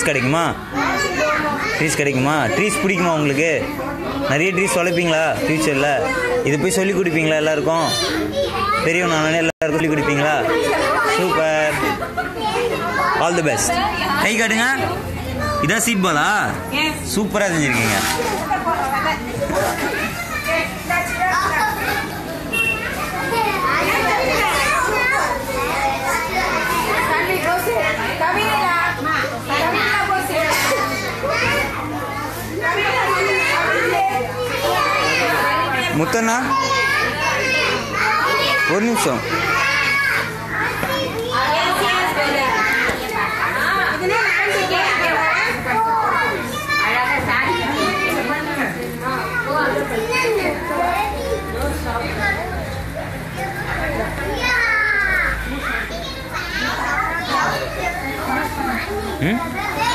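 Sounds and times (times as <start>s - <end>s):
young children chattering: 0.0s - 59.9s.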